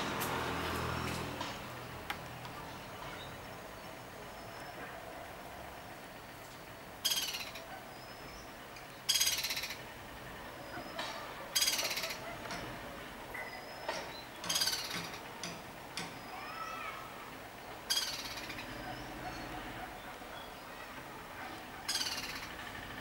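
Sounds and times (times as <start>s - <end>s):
woodpecker rattling call: 5.8s - 16.8s, 17.4s - 23.0s.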